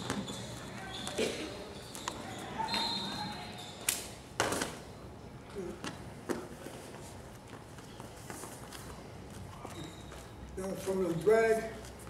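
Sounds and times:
squeak on rubber mat: 0:00.0 - 0:03.8, 0:09.6 - 0:10.4.

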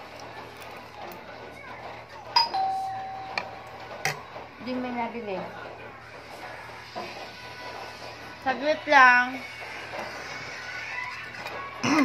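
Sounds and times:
doorbell chime tone: 0:02.4 - 0:03.6.

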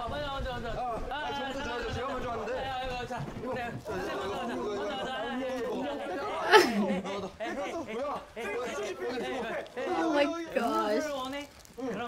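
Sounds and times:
young men talking excitedly: 0:00.0 - 0:12.0.

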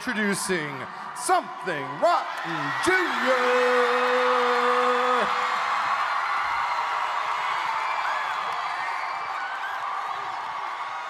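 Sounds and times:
audience cheering and applauding: 0:00.0 - 0:11.0.

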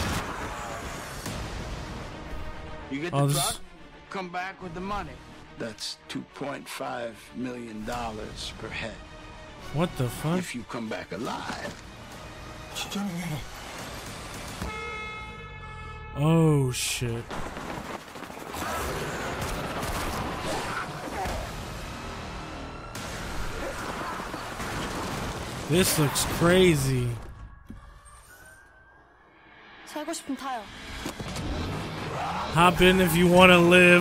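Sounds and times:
film trailer soundtrack: 0:00.0 - 0:34.0
man's voice: 0:03.0 - 0:03.6, 0:16.2 - 0:17.3, 0:25.7 - 0:27.3, 0:32.5 - 0:34.0
horn-like blare: 0:14.6 - 0:16.8.

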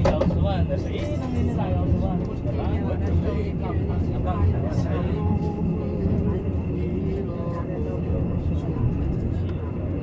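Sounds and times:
people talking: 0:00.0 - 0:10.0
train rumbling on track: 0:00.0 - 0:10.0.

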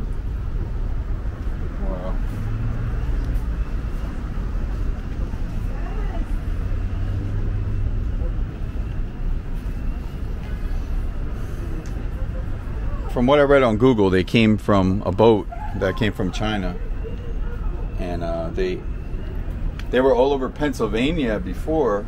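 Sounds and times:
city traffic rumble: 0:00.0 - 0:22.0
faint voices of passers-by: 0:00.0 - 0:22.0.

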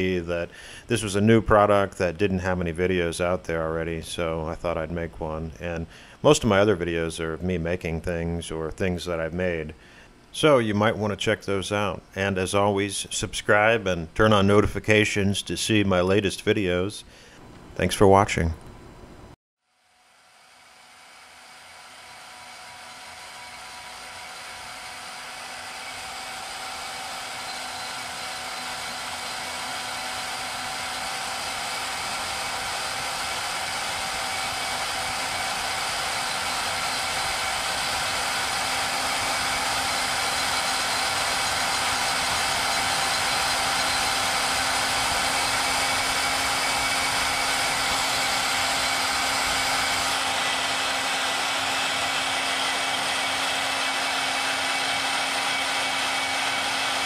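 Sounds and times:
band saw cutting plastic: 0:19.9 - 0:57.0.

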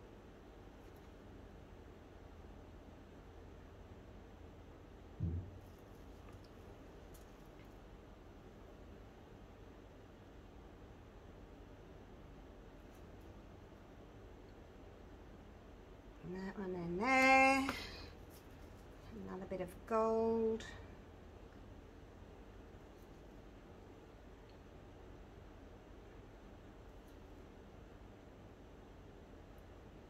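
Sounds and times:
paper cup set down on table: 0:05.2 - 0:05.6.

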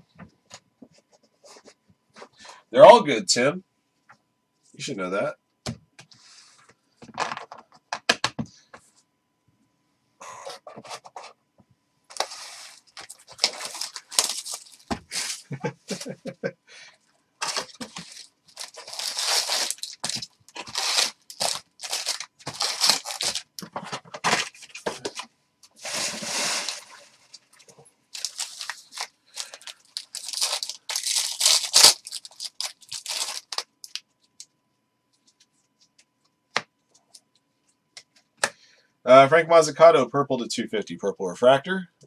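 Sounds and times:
foil wrappers tearing and crinkling: 0:12.1 - 0:16.0, 0:17.4 - 0:23.5, 0:24.3 - 0:27.4, 0:28.2 - 0:34.0.

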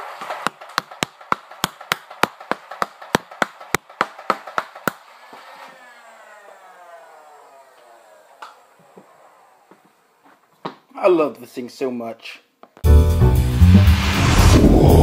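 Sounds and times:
toy blaster clacking: 0:00.5 - 0:10.1
falling whine: 0:04.2 - 0:10.5, 0:13.3 - 0:15.0.

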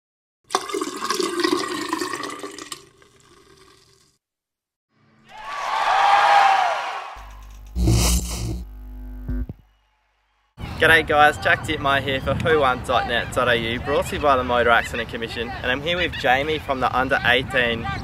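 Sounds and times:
deep bass note with hit: 0:07.7 - 0:09.5.

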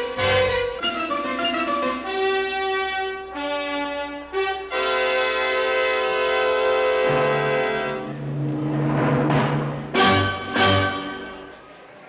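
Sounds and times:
orchestral music with brass chord: 0:00.2 - 0:11.6.

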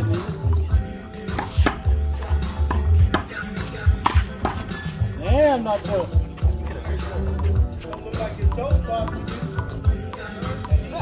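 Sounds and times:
music with heavy bass beat: 0:00.0 - 0:11.0
handball smacking concrete: 0:01.3 - 0:04.7.

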